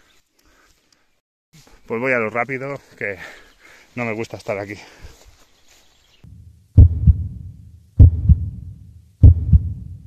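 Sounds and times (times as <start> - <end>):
heartbeat double thumps: 6.3 - 10.0.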